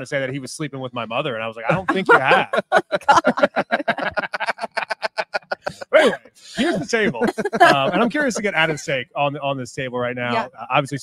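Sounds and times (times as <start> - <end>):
loud laughter: 1.7 - 8.9.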